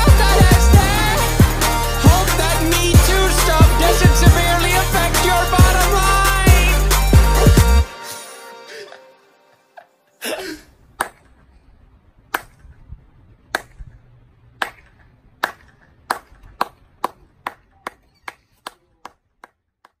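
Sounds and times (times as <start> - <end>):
person clapping slowly: 14.6 - 20.0.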